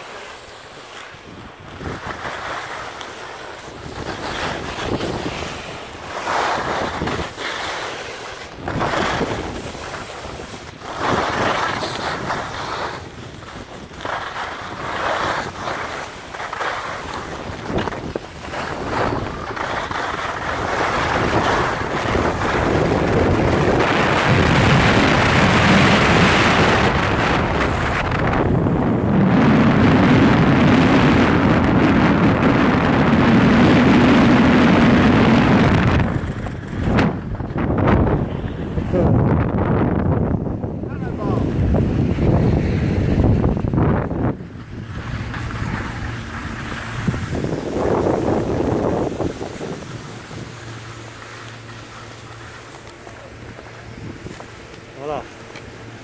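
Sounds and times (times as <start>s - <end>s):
skis scraping on snow: 0.0s - 56.0s
wind rushing over microphone: 1.0s - 56.0s.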